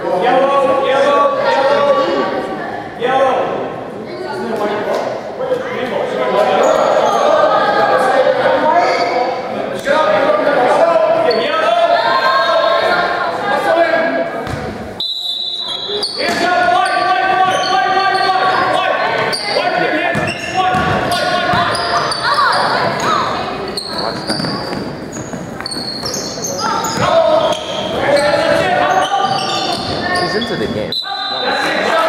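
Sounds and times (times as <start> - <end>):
voices calling and shouting: 0.0 - 32.0
sneaker squeaks: 6.5 - 7.4, 14.4 - 31.6.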